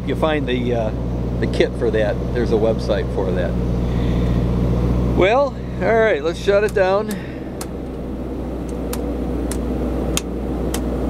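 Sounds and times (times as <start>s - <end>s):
generator running steadily: 0.0s - 11.0s
toggle switch clicks: 10.2s - 10.9s.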